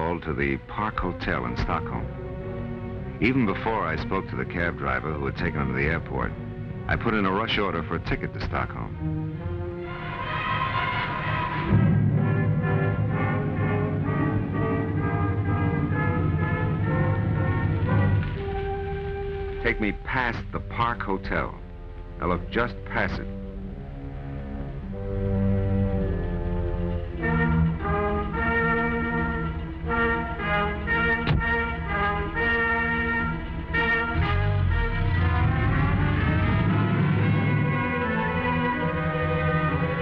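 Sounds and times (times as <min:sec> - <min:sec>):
orchestral background music: 0:00.0 - 0:40.0
car door shutting: 0:31.1 - 0:31.7.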